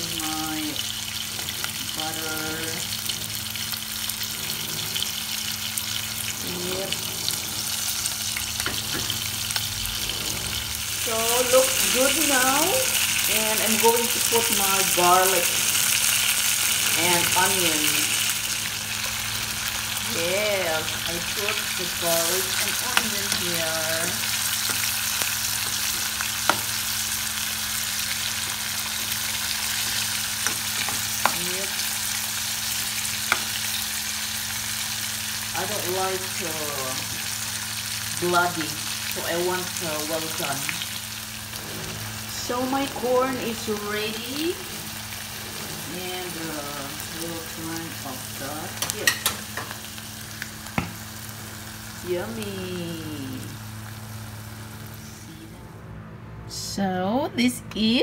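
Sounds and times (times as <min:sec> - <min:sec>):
steak sizzling in butter: 0:00.0 - 0:54.8
metal utensil clicking on pan: 0:48.8 - 0:49.8.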